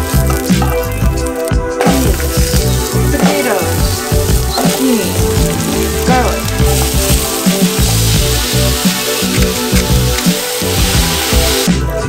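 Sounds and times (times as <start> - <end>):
onions sizzling in hot oil: 0.0 - 11.9
background music with a beat: 0.0 - 12.0.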